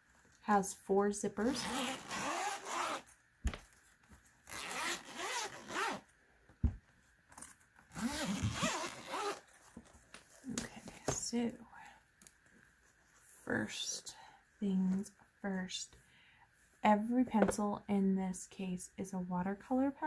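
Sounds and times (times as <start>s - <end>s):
zippers being unzipped: 1.5s - 3.1s, 4.5s - 6.1s, 7.9s - 9.5s.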